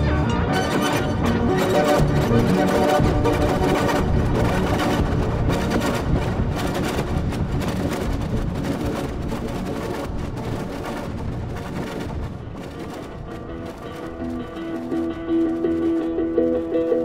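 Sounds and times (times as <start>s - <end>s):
processed electric guitar: 0.0s - 17.0s.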